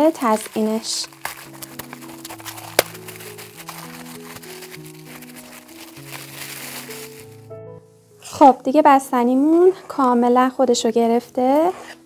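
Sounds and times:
frozen cream cracking: 0.0 - 7.4
soft background music: 0.0 - 12.0.

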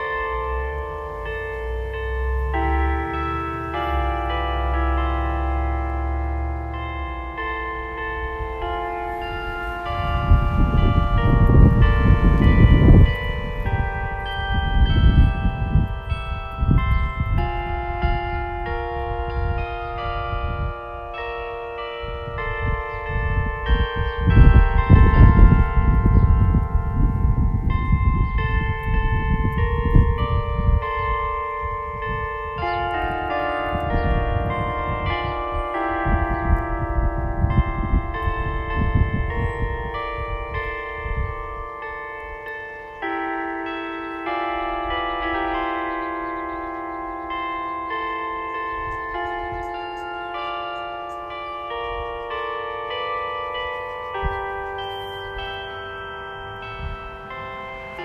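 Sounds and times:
church bells chiming a tune: 0.0 - 58.0
wind rumbling on microphone: 0.0 - 58.0.

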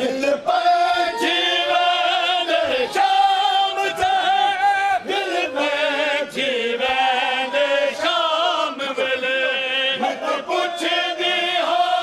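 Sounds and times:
men singing a lament: 0.0 - 12.0.

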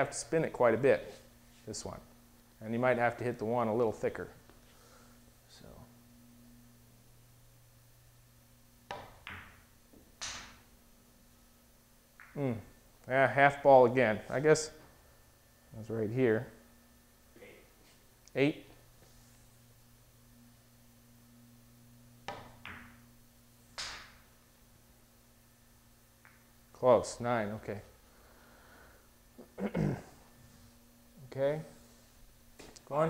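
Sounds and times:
billiard balls clicking: 8.9 - 10.6, 12.2 - 12.4, 22.2 - 23.1, 23.8 - 24.3, 26.2 - 26.5
cue tip hitting ball: 8.9 - 10.6, 22.2 - 23.1, 23.8 - 24.2.

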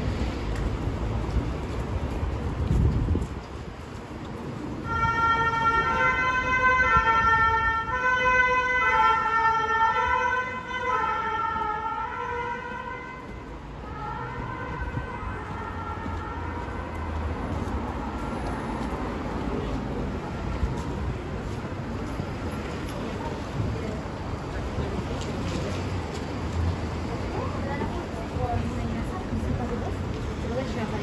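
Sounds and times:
street traffic rumble: 0.0 - 31.0
two-tone siren: 4.8 - 17.1.

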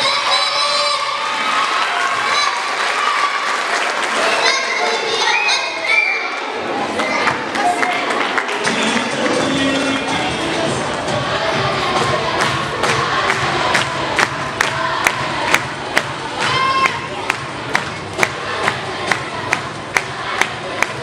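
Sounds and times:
high drawn-out shout: 0.0 - 6.5
children cheering and shouting: 0.0 - 8.2, 12.9 - 17.3
rhythmic clapping: 7.0 - 21.0
dance music: 7.9 - 21.0.

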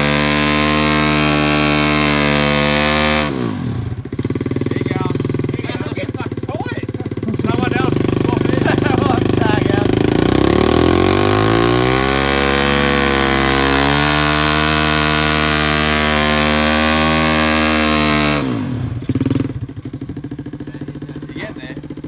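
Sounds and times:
motorbike engine revving: 0.0 - 22.0.

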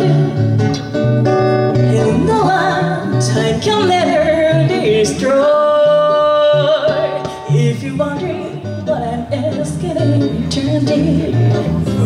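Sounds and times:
woman singing into microphone: 0.0 - 0.6, 1.7 - 12.0
electric guitar: 0.0 - 12.0.

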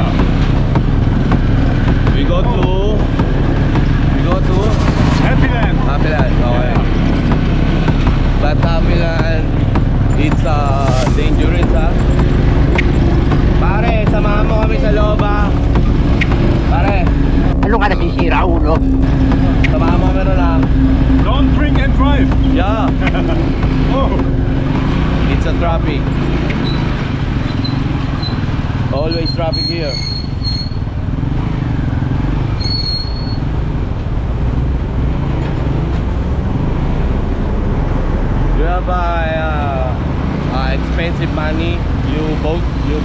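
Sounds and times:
people talking: 2.0 - 3.1, 4.1 - 7.3, 8.3 - 24.4, 25.1 - 27.2, 28.9 - 30.0, 38.5 - 43.0.

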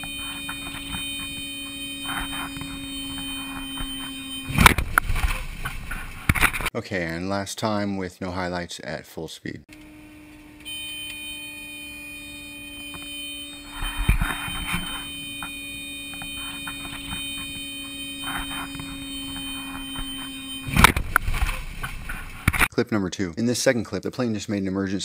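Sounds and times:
aircraft cabin hum with whine: 0.0 - 6.3, 9.8 - 22.4.

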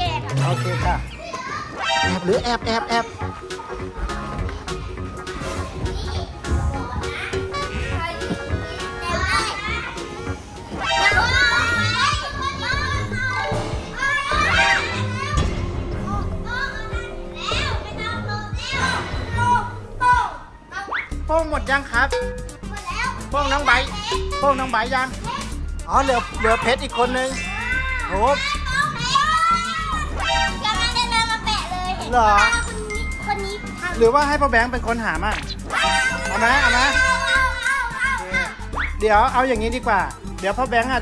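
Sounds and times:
background music: 0.0 - 41.0
children calling and chattering: 0.0 - 41.0.

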